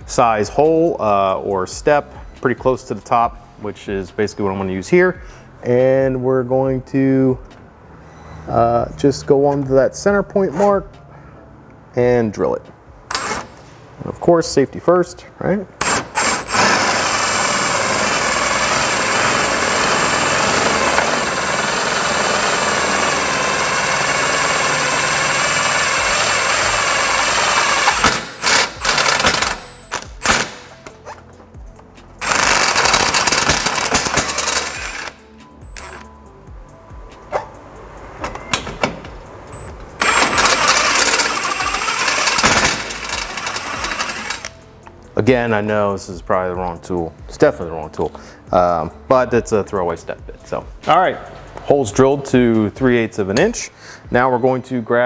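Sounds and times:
impact driver hammering through metal: 15.8s - 30.8s, 32.2s - 35.2s, 40.0s - 44.5s.

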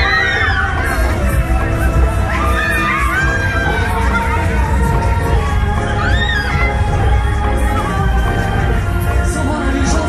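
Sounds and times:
riders shrieking and whooping: 0.0s - 4.9s
fairground music with heavy bass: 0.0s - 10.0s.

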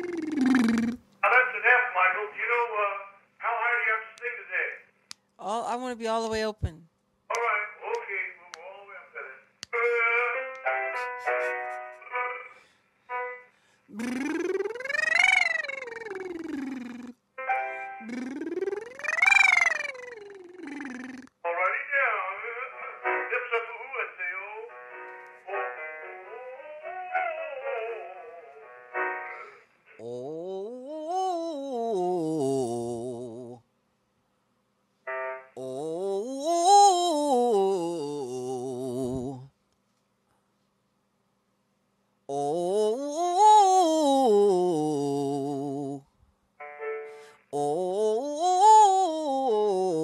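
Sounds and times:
quick vocal note runs: 13.9s - 17.1s, 18.0s - 21.3s
man singing sliding sirens: 35.6s - 39.3s, 42.3s - 46.0s, 47.6s - 50.0s.

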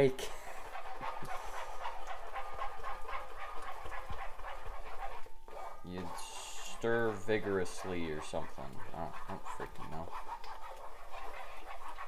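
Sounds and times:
eggs sizzling in oil: 0.0s - 12.0s
wooden spoon stirring: 0.0s - 12.0s.

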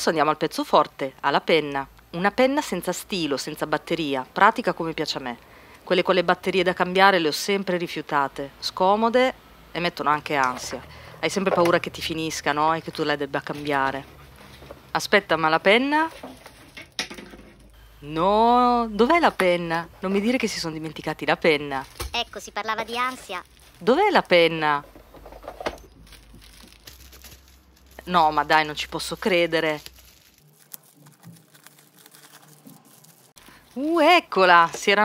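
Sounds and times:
plastic packaging crinkling: 21.7s - 24.4s, 25.0s - 34.0s.

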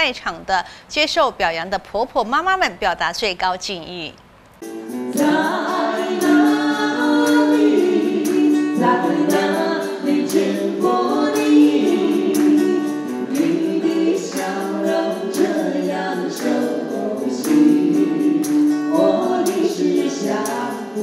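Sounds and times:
acoustic guitar strumming: 4.6s - 21.0s
man and woman singing a duet: 5.1s - 21.0s.

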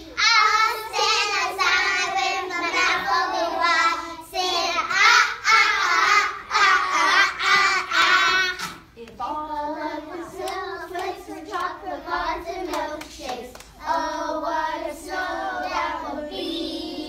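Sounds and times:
children singing in unison: 0.0s - 17.0s.

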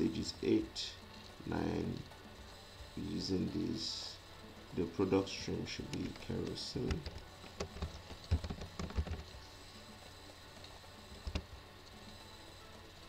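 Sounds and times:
computer keyboard key clicks: 6.9s - 9.2s.

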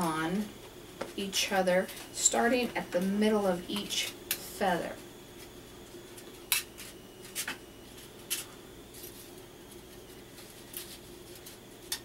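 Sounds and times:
faint steady hum: 0.0s - 12.0s
metal foil clicks and crinkles: 8.2s - 12.0s.

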